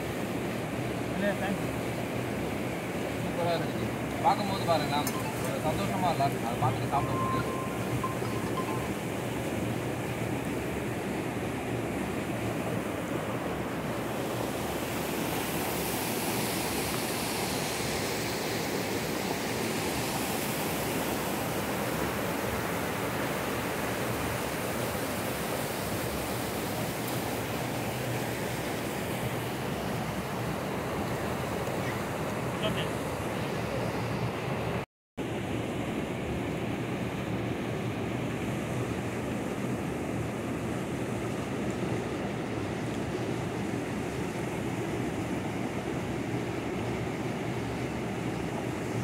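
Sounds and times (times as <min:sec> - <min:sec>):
river water rushing through dam: 0:00.0 - 0:49.0.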